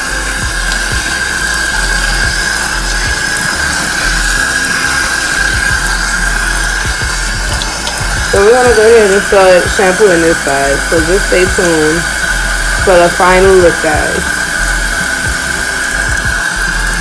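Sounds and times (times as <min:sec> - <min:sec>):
faucet water running: 0:00.0 - 0:17.0.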